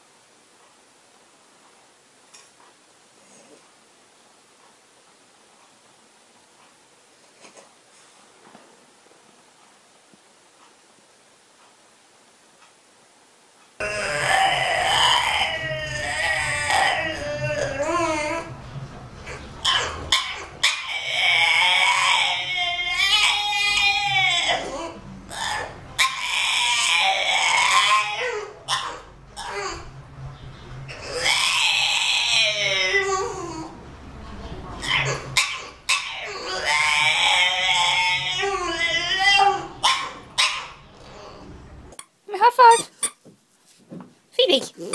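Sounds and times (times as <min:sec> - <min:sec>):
dogs whining: 0:13.8 - 0:18.6, 0:19.2 - 0:30.1, 0:30.7 - 0:33.9, 0:34.8 - 0:41.7.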